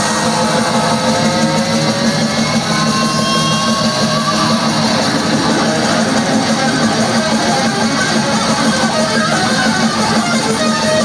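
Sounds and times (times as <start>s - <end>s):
death metal band playing live: 0.0s - 11.0s
distorted electric guitars: 0.0s - 11.0s.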